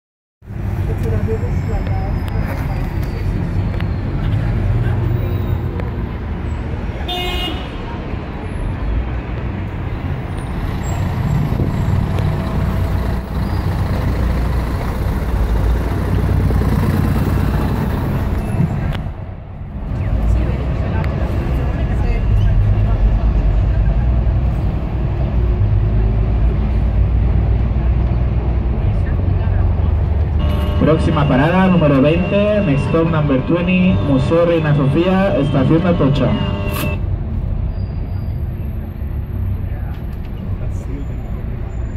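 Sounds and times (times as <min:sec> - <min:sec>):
bus rumbling: 0:00.4 - 0:41.9
street traffic: 0:00.4 - 0:41.9
vehicle horn toot: 0:07.1 - 0:07.8, 0:30.4 - 0:37.0.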